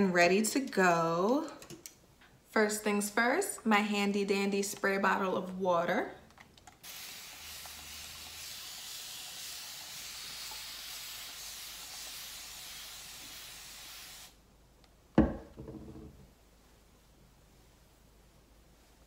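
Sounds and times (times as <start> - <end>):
spray bottle hissing: 6.8 - 14.4.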